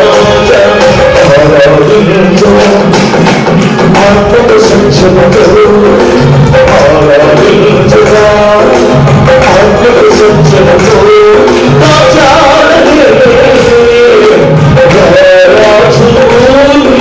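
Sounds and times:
amplified instrumental accompaniment: 0.0 - 17.0
men singing into microphones: 0.0 - 17.0
steady percussion beat: 0.0 - 17.0.

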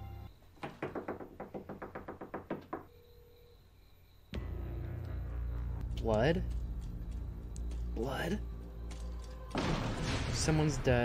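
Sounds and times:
rapid knocking on door: 0.6 - 2.9.

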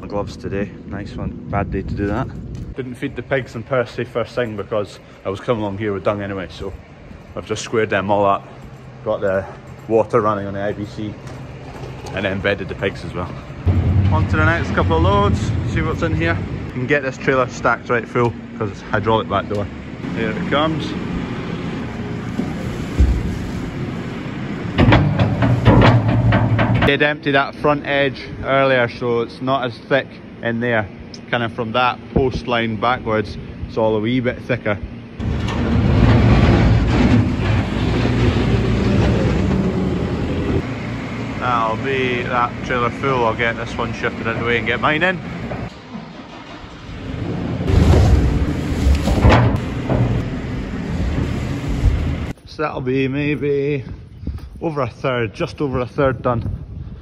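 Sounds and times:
diesel engine running: 0.0 - 29.0, 29.7 - 52.4
low thud: 13.7 - 16.7, 22.4 - 23.4
muck knocking into metal trailer: 24.7 - 27.0.

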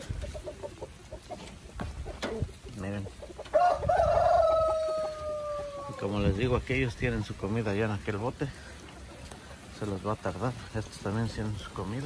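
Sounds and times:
rooster crowing: 3.5 - 6.0.

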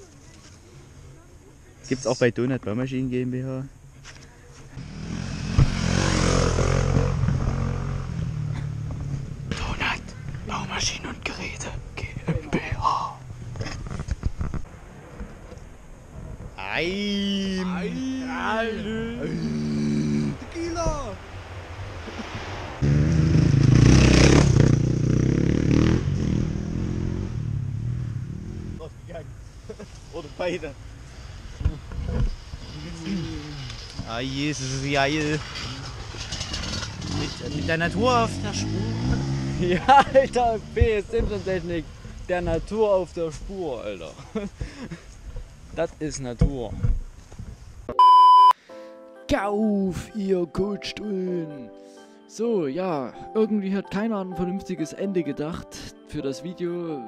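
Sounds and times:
dirt bike engine passing: 4.8 - 9.5, 17.6 - 29.5, 30.3 - 42.6
electronic censor bleep: 47.9 - 48.6
music: 48.7 - 57.0.

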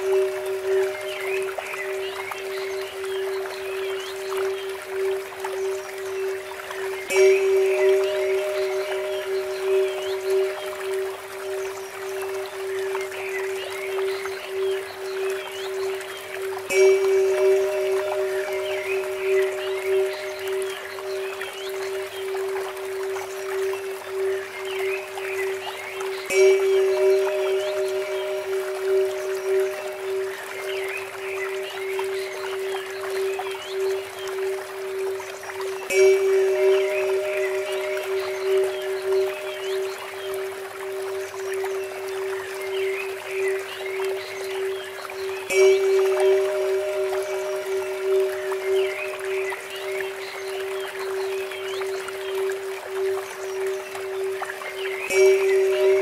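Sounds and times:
small birds chirping: 0.0 - 56.0
trickling water fountain: 0.0 - 56.0
temple bell ringing: 7.0 - 11.6, 16.7 - 22.1, 26.3 - 32.4, 35.9 - 42.0, 45.5 - 50.8, 55.1 - 56.0.

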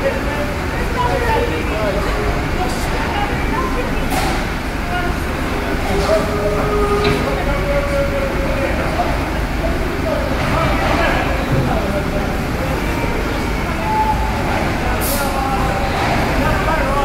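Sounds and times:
background voices: 0.0 - 17.0
vehicle engines rumbling: 0.0 - 17.0.

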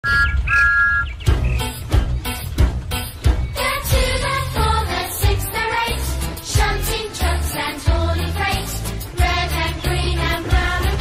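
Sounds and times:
upbeat children's music: 1.3 - 11.0.

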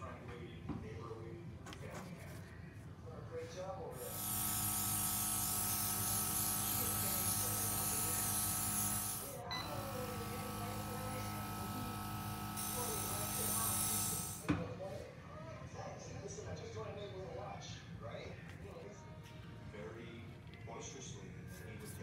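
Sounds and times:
airbrush hissing: 4.0 - 9.4, 10.0 - 14.5
small compressor humming: 4.0 - 14.5.

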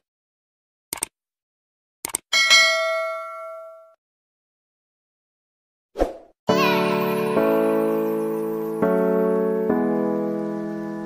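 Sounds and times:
notification bell ding: 2.4 - 4.0
piano music: 6.5 - 11.0.

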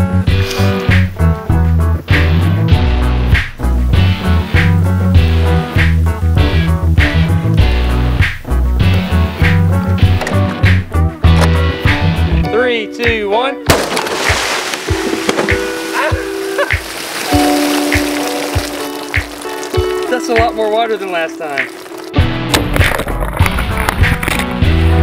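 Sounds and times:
background music with steady beat: 0.0 - 13.7
gunshot burst and glass shattering: 13.7 - 14.7
water rushing out: 13.8 - 22.2.

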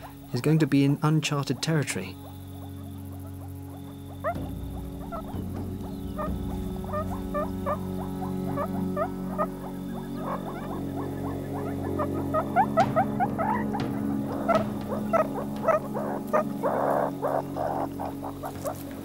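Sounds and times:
background music low notes: 0.0 - 19.0
meerkats chirping: 0.0 - 19.0.

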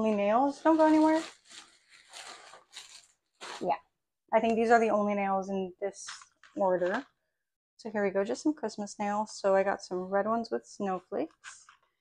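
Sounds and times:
packaging rustling and crinkling: 0.5 - 3.8.

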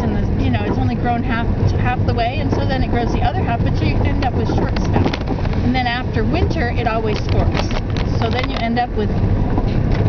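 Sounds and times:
woman talking: 0.0 - 9.2
car road and engine noise: 0.0 - 10.0.

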